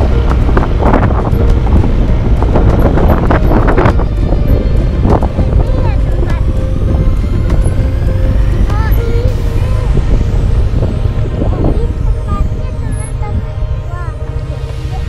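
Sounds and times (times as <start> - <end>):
motorcycle engine running: 0.0 - 15.0
wind rumble on microphone: 0.0 - 15.0.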